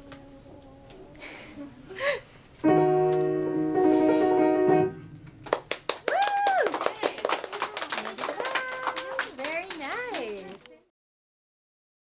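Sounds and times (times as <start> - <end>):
piano piece: 2.6 - 6.6
people clapping: 5.2 - 10.8
person cheering: 6.0 - 9.4.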